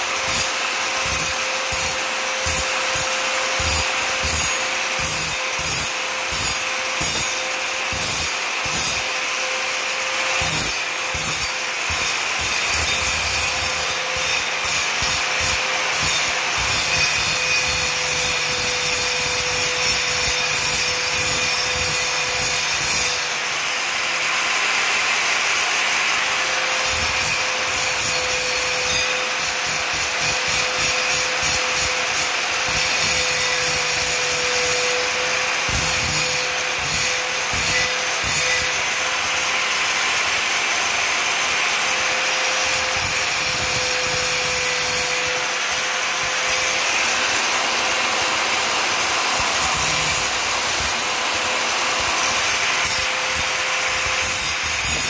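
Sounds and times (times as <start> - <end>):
angle grinder grinding metal: 0.0 - 55.0.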